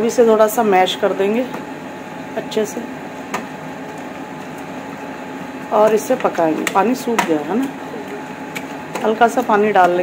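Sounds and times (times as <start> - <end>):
woman speaking: 0.0 - 1.6, 2.4 - 3.0, 5.7 - 8.1, 9.0 - 10.0
steady mechanical hum: 0.0 - 10.0.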